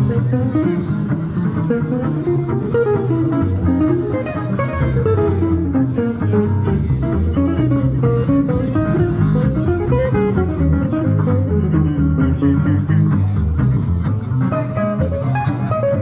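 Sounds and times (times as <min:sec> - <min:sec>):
double bass notes: 0:00.0 - 0:16.0
lead guitar melody: 0:00.0 - 0:16.0
rhythm guitar: 0:00.0 - 0:16.0.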